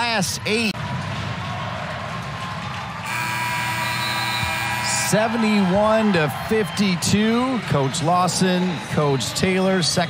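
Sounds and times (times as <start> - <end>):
electrical hum: 3.1 - 5.7.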